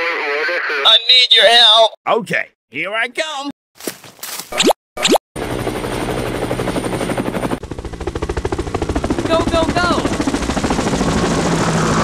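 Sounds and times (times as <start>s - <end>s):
helicopter rotor chopping: 5.0s - 12.0s.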